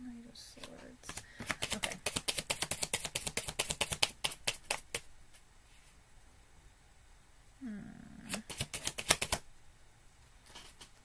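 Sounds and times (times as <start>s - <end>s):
cards being shuffled: 0.6s - 5.1s, 8.3s - 9.5s.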